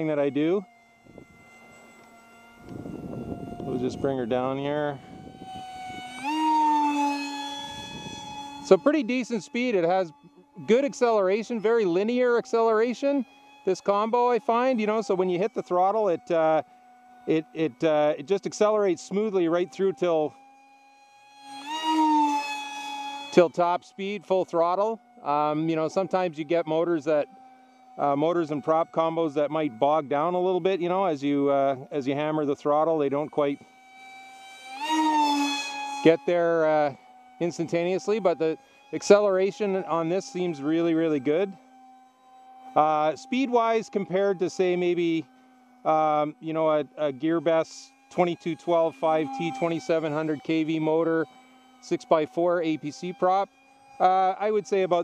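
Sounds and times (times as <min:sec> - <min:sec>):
electric motor whine with propeller: 0:00.0 - 0:55.0.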